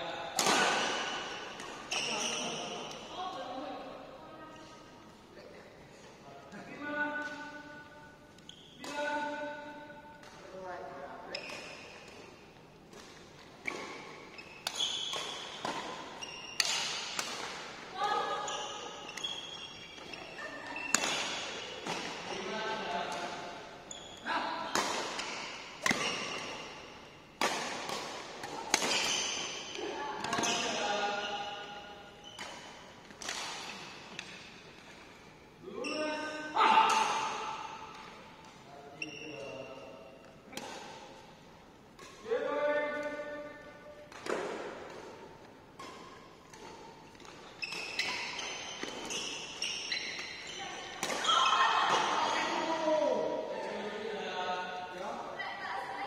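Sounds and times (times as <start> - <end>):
badminton racket hitting shuttlecock: 11.3 - 23.7, 24.6 - 31.8, 32.4 - 34.9, 44.0 - 52.4.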